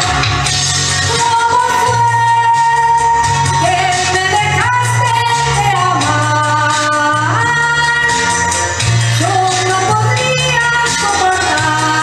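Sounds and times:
instrumental accompaniment: 0.0 - 9.9
woman singing a ballad: 0.0 - 12.0.

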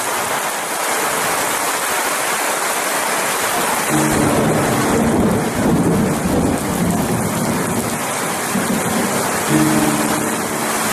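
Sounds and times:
heavy rain on leaves: 0.0 - 10.9.

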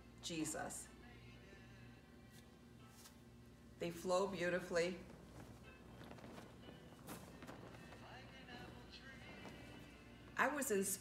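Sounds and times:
faint background music: 0.0 - 11.0
flags swishing through air: 4.1 - 11.0.

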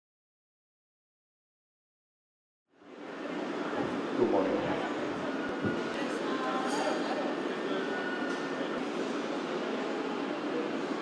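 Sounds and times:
murmur of voices: 2.9 - 11.0.

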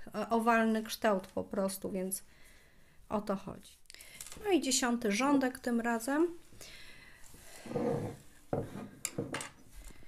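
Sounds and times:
soft rubbing on wooden tabletop: 7.6 - 8.9.

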